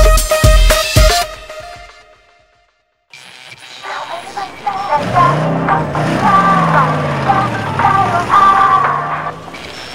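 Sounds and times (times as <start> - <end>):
song music playing: 4.3 - 9.5
car engine pulling away: 4.4 - 9.9.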